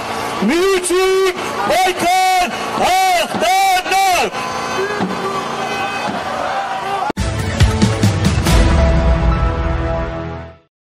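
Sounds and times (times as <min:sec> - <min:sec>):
large outdoor crowd noise: 0:00.0 - 0:08.6
man shouting over loudspeaker: 0:00.4 - 0:07.1.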